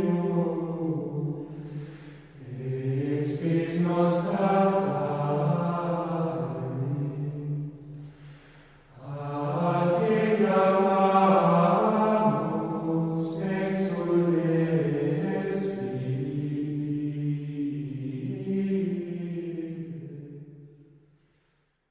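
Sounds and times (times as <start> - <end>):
men singing plainchant in unison: 2.4 - 7.4, 9.0 - 20.3.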